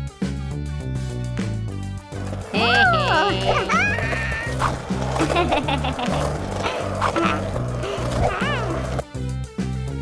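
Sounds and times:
cartoon music: 0:02.5 - 0:09.0
high-pitched cartoon voice calling: 0:02.6 - 0:04.6.

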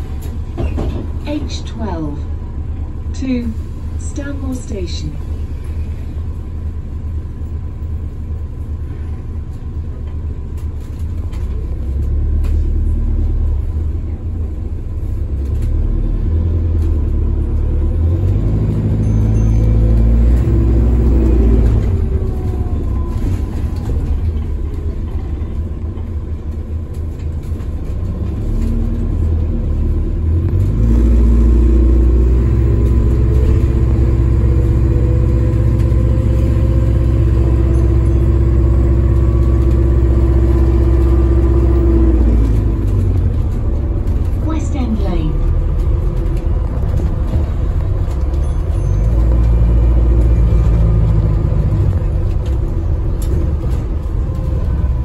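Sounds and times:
bus drivetrain and road rumble: 0:00.0 - 0:55.0.

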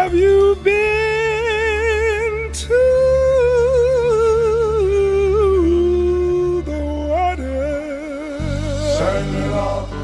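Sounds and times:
low accompaniment: 0:00.0 - 0:10.0
men singing with vibrato: 0:08.1 - 0:10.0.

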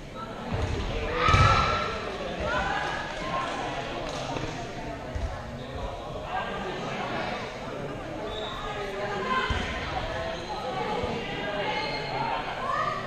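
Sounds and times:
ball bouncing on gym floor: 0:00.5 - 0:01.8.

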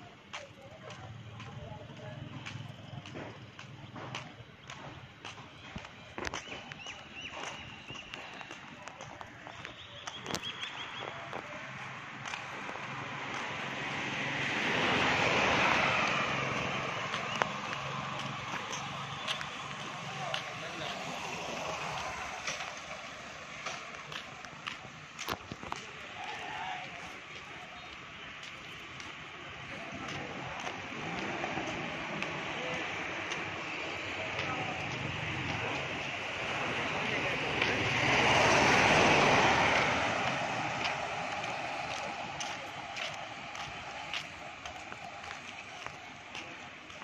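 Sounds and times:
street noise haze: 0:00.0 - 0:47.0.

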